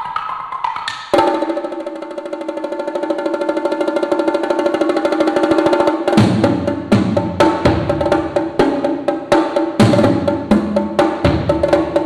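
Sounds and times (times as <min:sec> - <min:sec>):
drum roll on tuned drums: 0:00.8 - 0:12.0.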